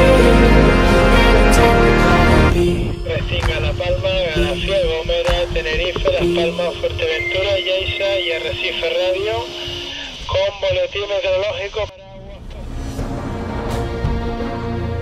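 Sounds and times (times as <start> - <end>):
background music: 0.0 - 10.9, 11.7 - 15.0
voice over radio loudspeaker: 2.9 - 12.6.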